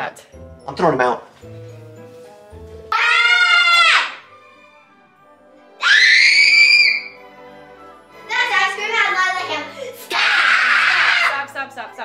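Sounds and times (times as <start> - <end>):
faint background music: 0.0 - 12.0
children screaming: 2.9 - 4.3, 5.8 - 7.2, 10.1 - 11.4.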